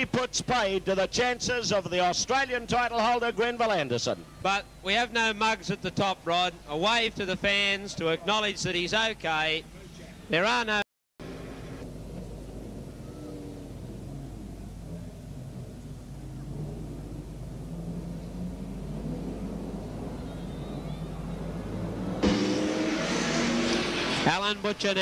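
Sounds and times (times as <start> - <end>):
racing car engines droning: 11.2 - 25.0.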